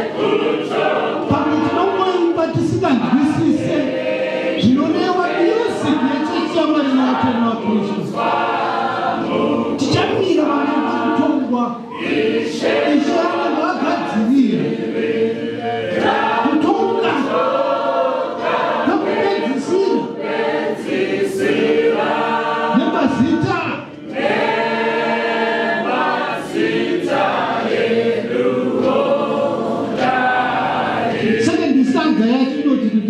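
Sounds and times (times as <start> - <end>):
choir singing unaccompanied: 0.0 - 33.0.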